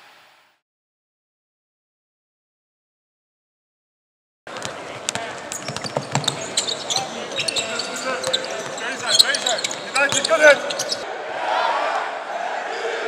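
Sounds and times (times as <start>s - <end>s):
ball bouncing on hardwood court: 4.5s - 11.0s
shoe squeaks: 4.5s - 11.0s
echoing voices: 4.5s - 13.0s.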